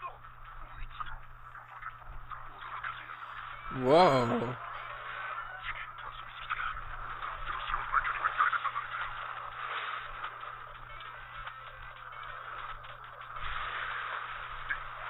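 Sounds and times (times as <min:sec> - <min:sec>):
character speaking: 0:03.7 - 0:04.6.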